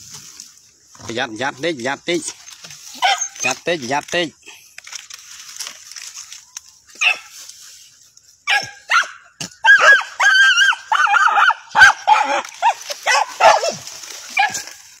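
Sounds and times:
small dogs yelping and whining: 0:02.9 - 0:03.6, 0:08.4 - 0:14.6.

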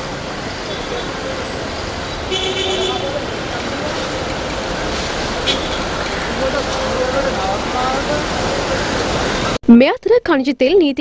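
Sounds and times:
busy street traffic: 0:00.0 - 0:11.0
vehicle horn tooting: 0:02.1 - 0:03.4, 0:05.4 - 0:06.0.

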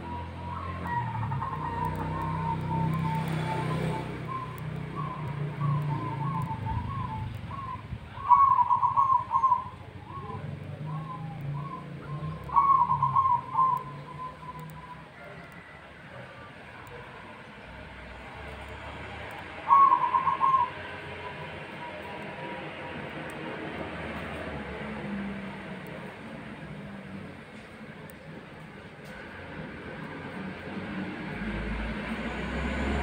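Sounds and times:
dove cooing trill: 0:00.0 - 0:16.3, 0:19.1 - 0:22.7
steady background noise: 0:00.0 - 0:33.0.

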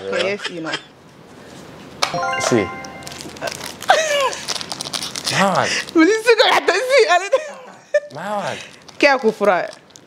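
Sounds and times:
electronic bell-like chime: 0:02.1 - 0:03.6.

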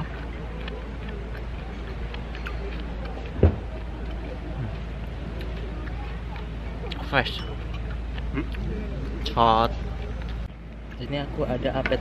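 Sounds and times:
faint distant voices: 0:00.0 - 0:12.0
low outdoor rumble: 0:00.0 - 0:12.0.

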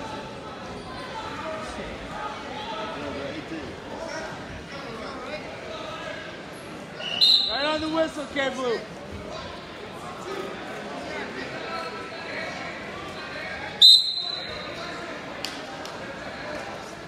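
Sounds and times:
crowd voices in echoing hall: 0:00.0 - 0:17.0
referee's whistle blast: 0:07.0 - 0:07.7, 0:13.8 - 0:14.7.

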